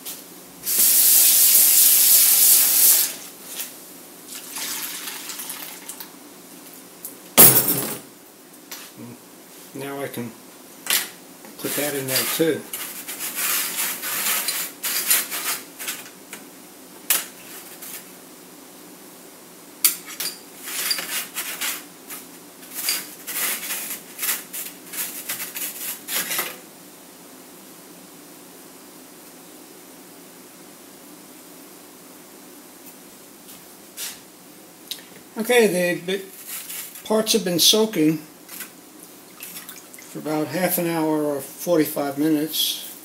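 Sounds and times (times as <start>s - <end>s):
faint room hum: 0.0s - 43.0s.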